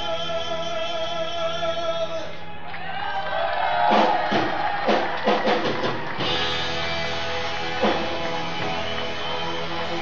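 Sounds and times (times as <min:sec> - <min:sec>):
live rock band playing: 0:03.8 - 0:10.0
drum fill: 0:03.9 - 0:09.2.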